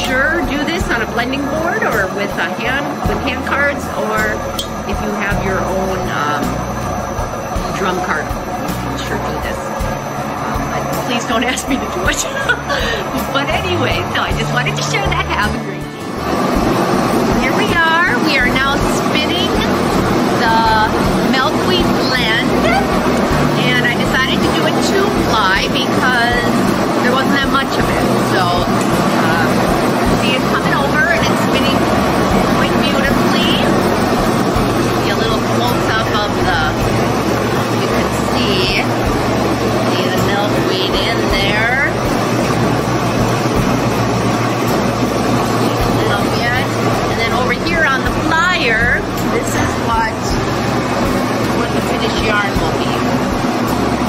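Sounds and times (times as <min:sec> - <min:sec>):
spinning frame mechanical hum: 0:00.0 - 0:54.0.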